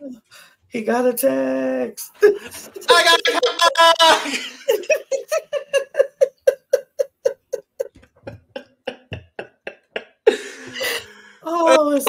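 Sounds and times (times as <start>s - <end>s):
hearty laughter: 2.2s - 11.1s.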